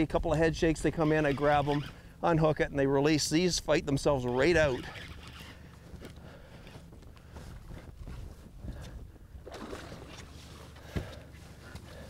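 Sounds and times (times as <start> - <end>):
boat low rumble: 0.0 - 12.0.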